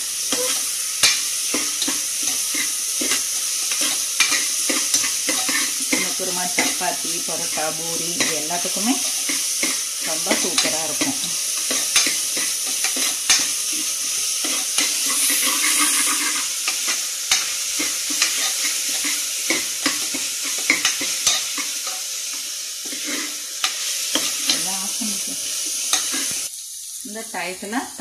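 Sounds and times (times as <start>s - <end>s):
onion and spices sizzling in oil: 0.0s - 28.0s
ladle scraping and clicking on pot: 0.3s - 6.7s.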